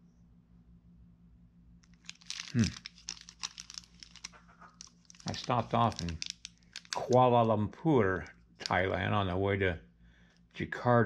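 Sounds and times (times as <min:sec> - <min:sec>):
plastic wrapper crinkling: 0:01.9 - 0:07.5, 0:08.6 - 0:09.0.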